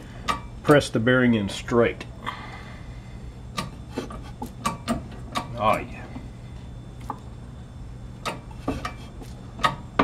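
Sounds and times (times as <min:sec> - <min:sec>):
workshop hum: 0:00.0 - 0:10.0.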